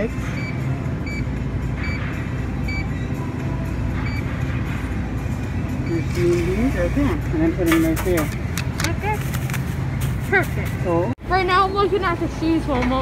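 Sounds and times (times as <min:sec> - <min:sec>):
store background hum: 0:00.0 - 0:13.0.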